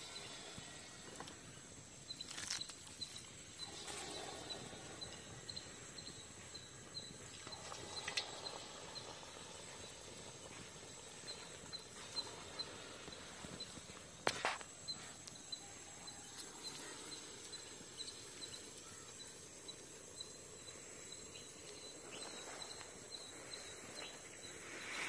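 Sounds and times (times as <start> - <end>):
batter frying in oil: 5.5 - 14.6.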